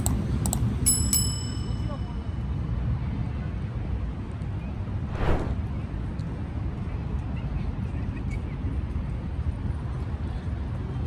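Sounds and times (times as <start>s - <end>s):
low street rumble: 2.7s - 11.0s.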